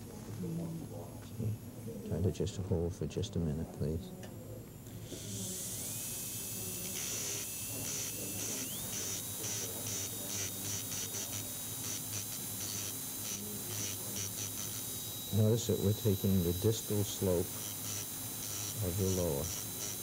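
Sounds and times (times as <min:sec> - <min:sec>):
dental drill whining: 0:04.9 - 0:20.0.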